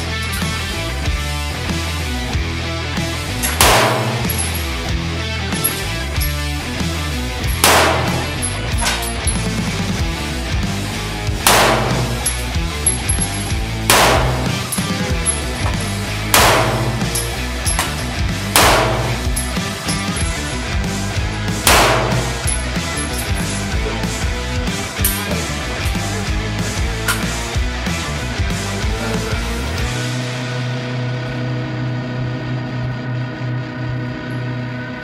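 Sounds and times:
background music: 0:00.0 - 0:35.0
pistol shots: 0:03.4 - 0:04.7, 0:07.6 - 0:09.1, 0:11.4 - 0:12.5, 0:13.8 - 0:15.1, 0:16.3 - 0:19.6, 0:21.6 - 0:22.7.

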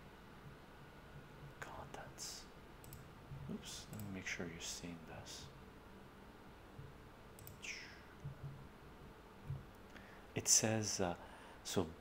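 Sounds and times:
man whispering: 0:01.6 - 0:02.5, 0:03.4 - 0:05.5, 0:07.6 - 0:08.1
small clicks: 0:02.8 - 0:03.1, 0:03.9 - 0:04.1, 0:07.4 - 0:08.4.

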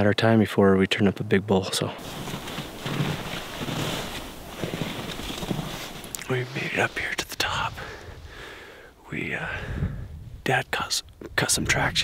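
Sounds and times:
wind buffeting microphone: 0:09.5 - 0:10.5.

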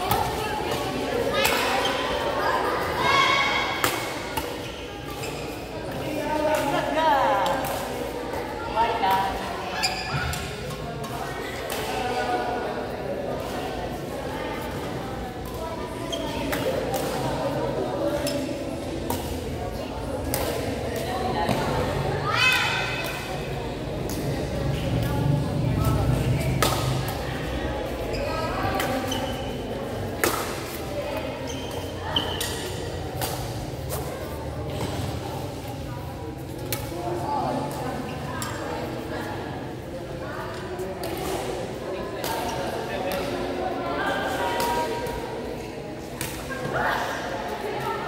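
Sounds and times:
racket hitting shuttlecock: 0:25.8 - 0:27.2, 0:30.1 - 0:30.8.

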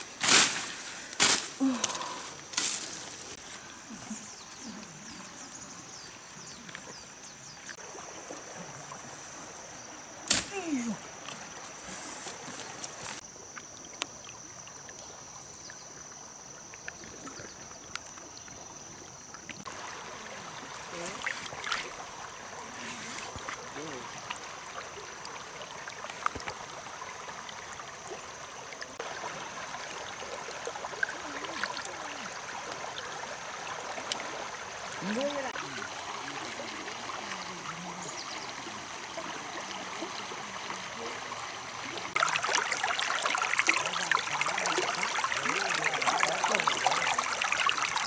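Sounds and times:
shallow river over stones: 0:00.0 - 0:48.0
stream water over pebbles: 0:00.0 - 0:48.0.

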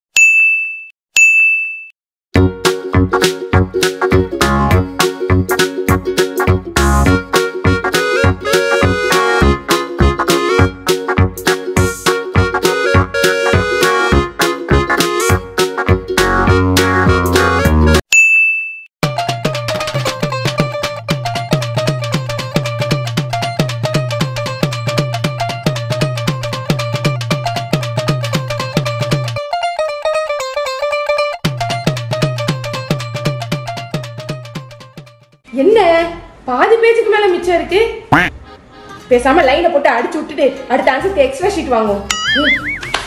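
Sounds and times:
high-pitched bell ding: 0:00.2 - 0:01.9, 0:18.1 - 0:18.9, 0:42.1 - 0:42.8
upbeat music with drum beat: 0:02.4 - 0:18.0, 0:19.0 - 0:29.4, 0:31.4 - 0:35.3, 0:38.1 - 0:38.3.

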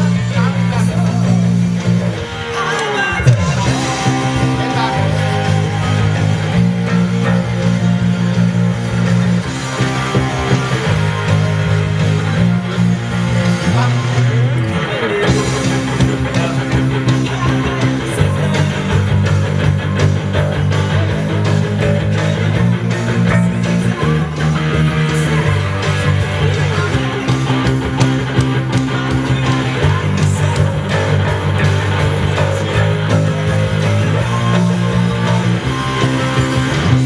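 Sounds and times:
electric guitar melody: 0:00.0 - 0:37.0
fingerpicked electric bass: 0:00.0 - 0:37.0.

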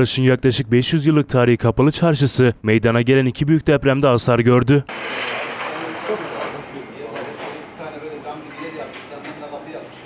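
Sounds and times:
distant indistinct voices: 0:04.9 - 0:10.0
steady hiss: 0:04.9 - 0:10.0.

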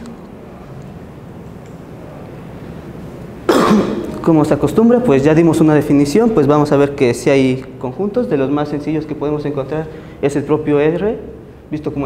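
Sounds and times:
man coughing: 0:03.5 - 0:04.2.

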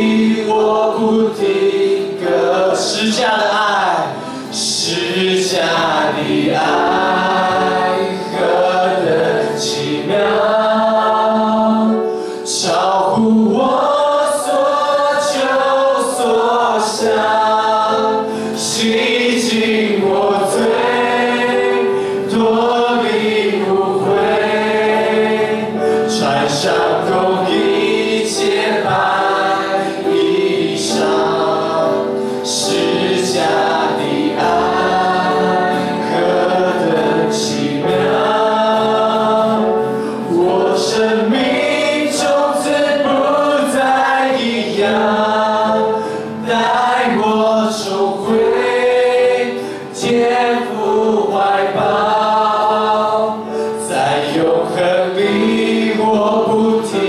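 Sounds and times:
man singing into microphone: 0:00.0 - 0:24.4, 0:25.8 - 0:57.0
congregation singing: 0:00.0 - 0:57.0
instrumental accompaniment: 0:00.0 - 0:57.0.

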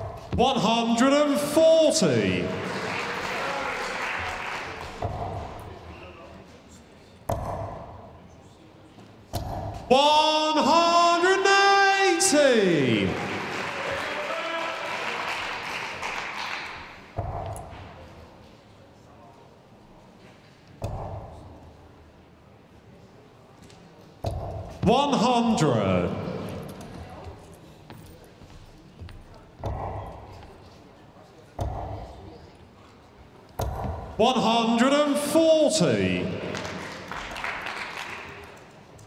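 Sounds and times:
referee calling out: 0:00.4 - 0:02.8, 0:09.9 - 0:15.2, 0:24.8 - 0:26.5, 0:34.2 - 0:36.6
crowd cheering and applauding: 0:02.3 - 0:05.0, 0:12.0 - 0:17.0, 0:36.3 - 0:38.6.

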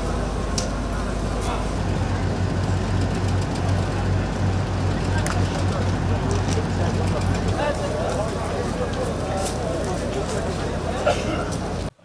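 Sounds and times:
vehicle engine idling: 0:00.0 - 0:11.9
crowd voices: 0:00.0 - 0:12.0.

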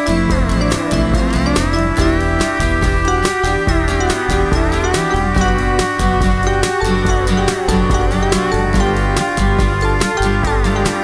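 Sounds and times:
instrumental pop music: 0:00.0 - 0:11.0.

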